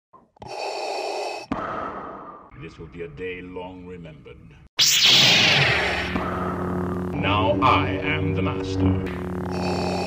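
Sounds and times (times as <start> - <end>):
mechanical respirator breathing: 0.4 - 2.5, 9.3 - 10.0.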